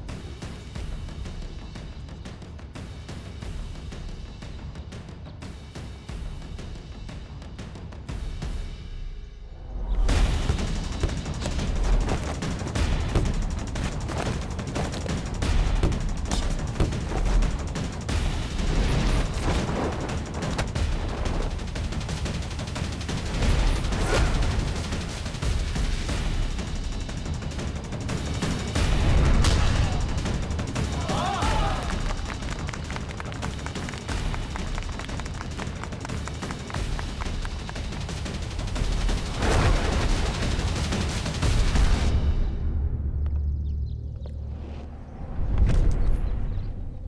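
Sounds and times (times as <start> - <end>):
dramatic action film score: 0.0 - 47.0
punch and impact effects: 10.0 - 21.1.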